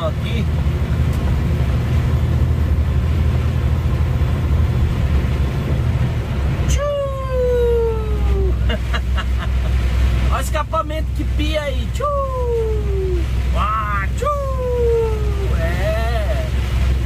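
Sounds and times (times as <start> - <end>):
rain noise: 0.0 - 17.0
road noise: 0.0 - 17.0
truck diesel engine droning: 0.0 - 17.0.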